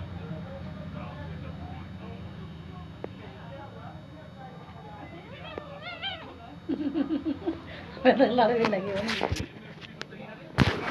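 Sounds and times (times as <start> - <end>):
cat meowing: 5.0 - 6.6.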